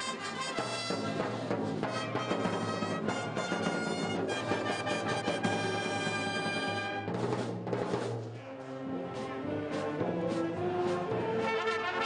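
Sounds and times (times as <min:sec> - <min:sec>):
wind band playing: 0:00.0 - 0:07.2, 0:08.4 - 0:12.0
drum strokes: 0:00.0 - 0:08.4, 0:09.2 - 0:12.0.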